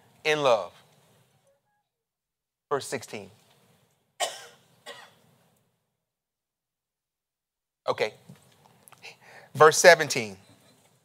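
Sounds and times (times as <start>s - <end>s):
man clearing his throat: 4.2s - 5.2s.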